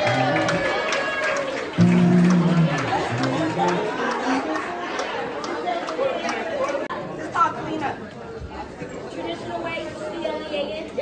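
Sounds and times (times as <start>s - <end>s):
crowd chatter in a large hall: 0.0s - 11.0s.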